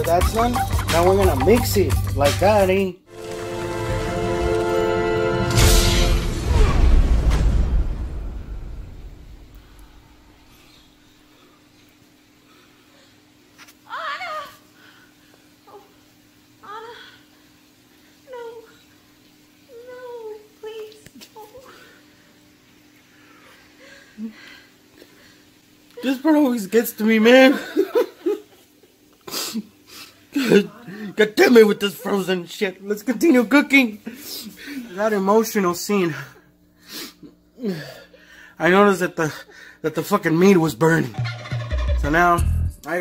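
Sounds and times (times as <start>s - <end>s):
person crying: 13.9s - 14.6s, 16.6s - 17.2s, 30.4s - 32.3s, 37.6s - 38.2s.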